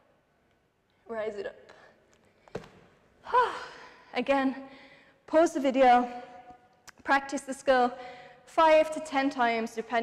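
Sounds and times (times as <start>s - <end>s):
bare feet thudding on mat: 2.4s - 2.9s.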